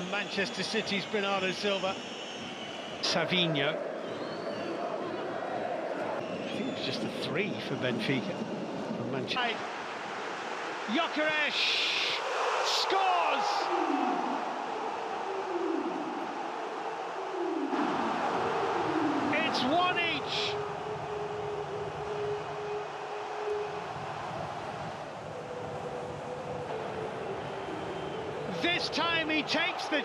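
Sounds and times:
shrill whistles: 0.0s - 3.1s, 3.9s - 8.5s, 27.0s - 30.0s
stadium crowd cheering: 0.0s - 30.0s.

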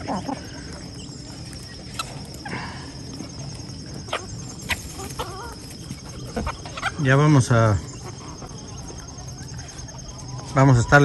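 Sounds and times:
chickens foraging: 0.0s - 11.0s.

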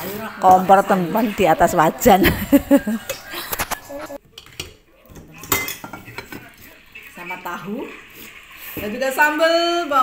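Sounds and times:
crockery and utensils clinking: 2.4s - 6.6s.

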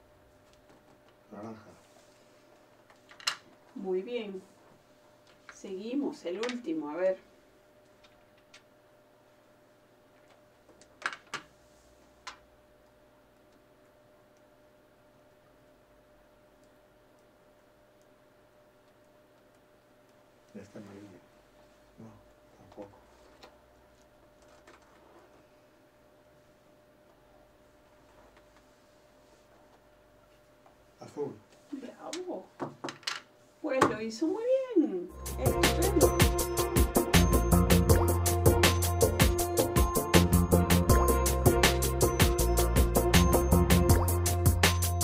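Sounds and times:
people talking: 5.6s - 7.2s, 33.6s - 36.2s.

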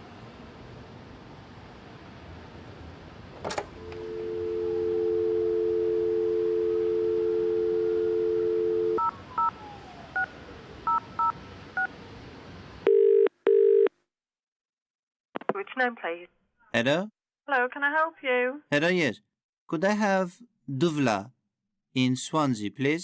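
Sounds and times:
telephone line click: 3.4s - 4.3s
dial tone: 3.8s - 9.5s, 12.9s - 13.9s
telephone ringing tone: 3.8s - 9.5s, 12.9s - 13.9s.

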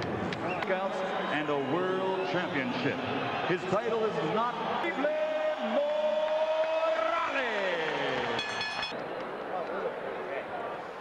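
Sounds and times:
arena background noise: 0.0s - 11.0s.

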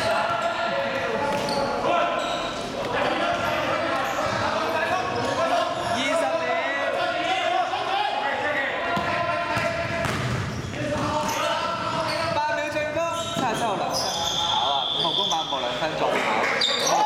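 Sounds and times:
players shouting: 0.0s - 15.4s
basketball bouncing on court: 8.9s - 13.6s.

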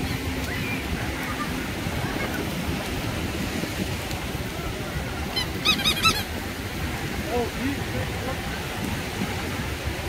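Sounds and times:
beach crowd murmur: 0.0s - 10.0s
small surf: 0.0s - 10.0s
short high squeaky calls: 5.3s - 6.3s.

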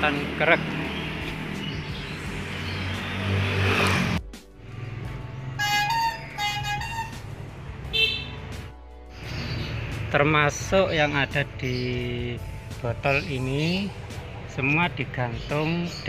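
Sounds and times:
background music sustained notes: 0.0s - 16.0s.

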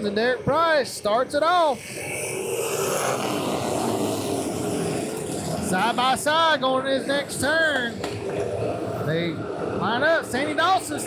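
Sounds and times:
race car engines running past: 0.0s - 11.0s.

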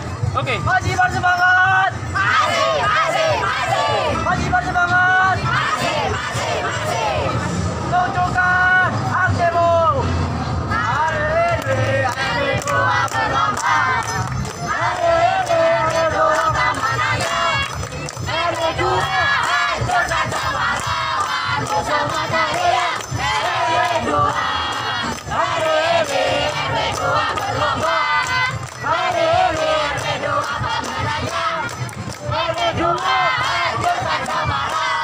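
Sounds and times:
group chanting a team cheer: 1.8s - 7.5s, 10.7s - 35.0s.

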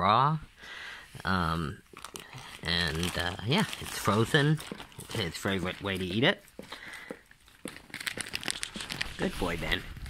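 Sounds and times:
crackling and clicking: 1.9s - 10.0s.

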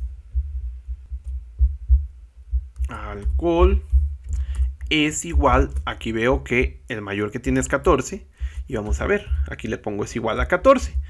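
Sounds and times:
deep thumps: 0.0s - 6.8s, 7.4s - 11.0s
low rumble: 0.0s - 6.8s, 7.4s - 9.7s.

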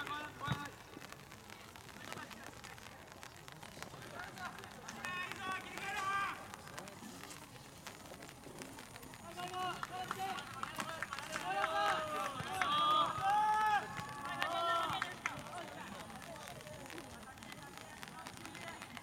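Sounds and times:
young men shouting: 11.4s - 14.9s.

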